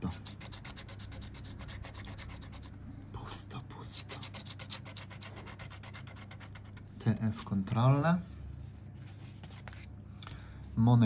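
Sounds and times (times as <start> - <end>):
lottery ticket being scratched: 0.0 - 2.8, 3.9 - 7.0.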